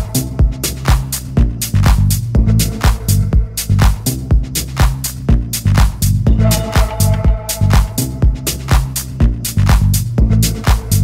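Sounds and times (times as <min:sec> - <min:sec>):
bass line: 0:00.0 - 0:11.0
kick drum: 0:00.0 - 0:11.0
off-beat hi-hats: 0:00.0 - 0:11.0
held synth chord: 0:06.3 - 0:08.6.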